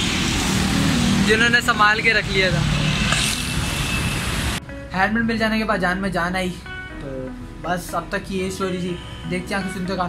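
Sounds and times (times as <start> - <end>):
street traffic noise: 0.0 - 4.9.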